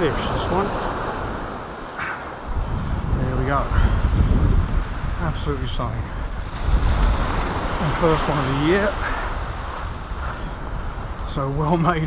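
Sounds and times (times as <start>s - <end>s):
surf on shingle beach: 0.0s - 12.0s
wind buffeting microphone: 0.0s - 12.0s.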